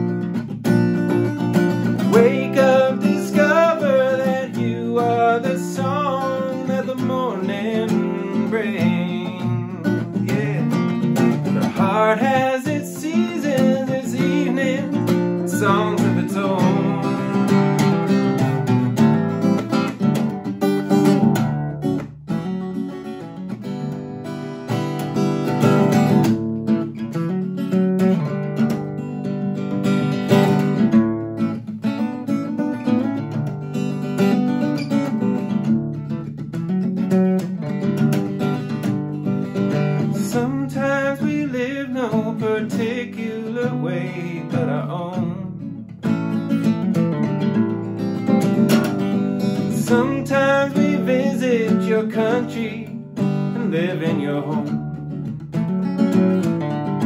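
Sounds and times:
acoustic guitar strummed and picked: 0.0 - 57.0.

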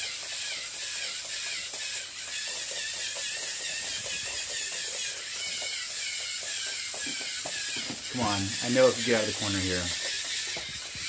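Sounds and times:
motors and gears whirring: 0.0 - 11.0
plastic legs tapping on wood: 3.2 - 8.1, 9.0 - 11.0.

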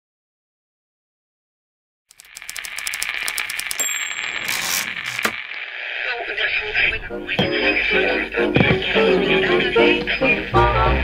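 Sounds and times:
rapid clicks: 2.1 - 5.5
crackling hiss: 2.1 - 6.3
music: 6.7 - 11.0.

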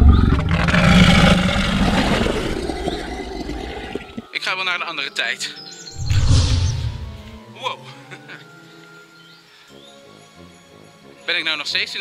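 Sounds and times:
dinosaur roar: 0.0 - 4.2.

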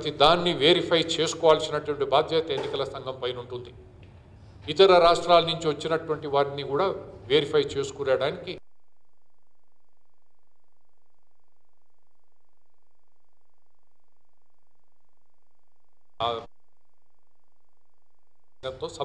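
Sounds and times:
steady electrical buzz: 0.0 - 19.0.

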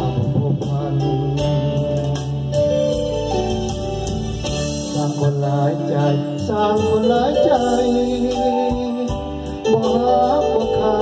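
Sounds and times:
man singing into microphone: 0.0 - 2.3, 4.8 - 11.0
backing music with bass and drums: 0.0 - 11.0.

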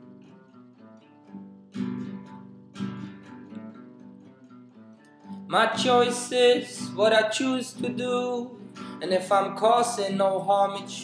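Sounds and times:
acoustic guitar picked notes: 0.0 - 11.0
acoustic guitar strums: 0.0 - 11.0.

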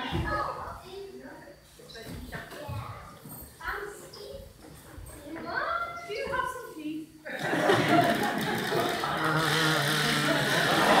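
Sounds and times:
audience laughter and chatter: 7.2 - 11.0.

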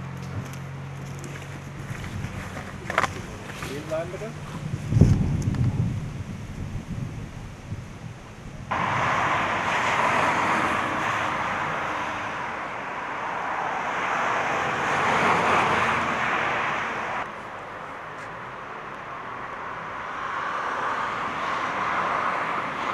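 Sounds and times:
steady rushing noise: 1.8 - 17.4.

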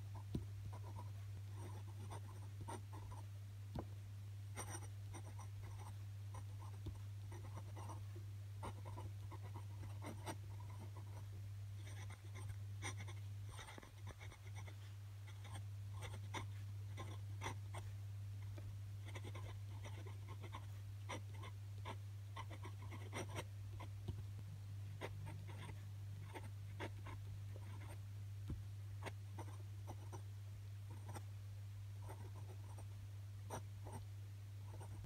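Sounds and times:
steady low hum: 0.0 - 35.0
glass pen scratching on paper: 0.7 - 3.2, 4.6 - 8.0, 8.6 - 17.8, 19.0 - 23.9, 25.0 - 28.0, 32.0 - 32.8.

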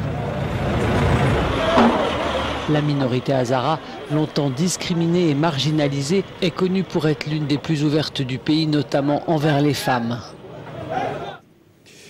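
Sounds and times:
traffic rumble and hiss: 0.0 - 12.0.

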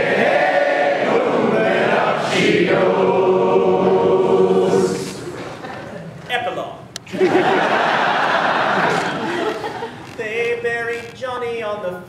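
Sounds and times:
male voices singing in harmony: 0.0 - 5.3.

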